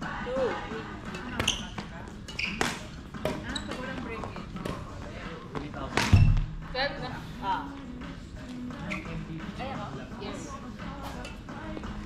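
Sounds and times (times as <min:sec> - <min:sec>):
rackets hitting shuttlecock: 0:02.5 - 0:03.8.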